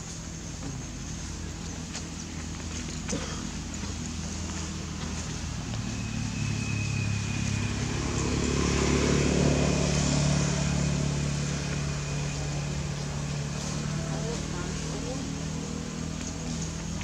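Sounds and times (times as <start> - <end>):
motor engine droning: 0.0 - 17.0.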